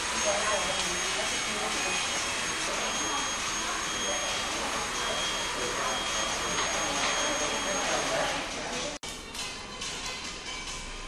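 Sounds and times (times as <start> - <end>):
blower motor whirring: 0.0 - 9.0
high-pitched whine: 0.0 - 9.0.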